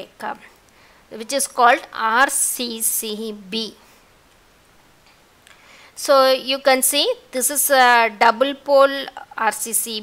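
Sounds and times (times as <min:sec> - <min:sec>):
background recording hiss: 0:00.0 - 0:10.0.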